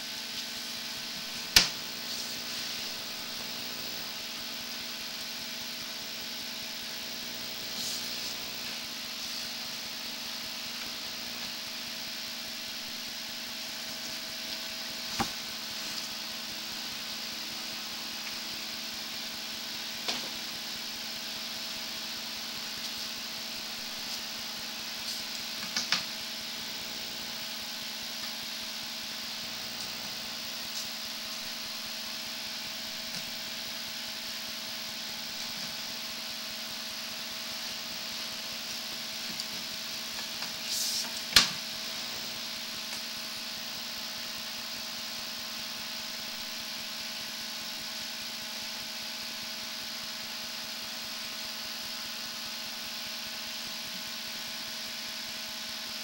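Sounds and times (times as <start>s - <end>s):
electrical hum and hiss: 0.0s - 56.0s.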